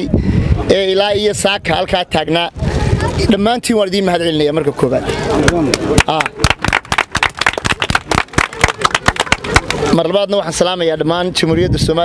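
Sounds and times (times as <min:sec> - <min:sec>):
man speaking into microphone: 0:09.9 - 0:12.0.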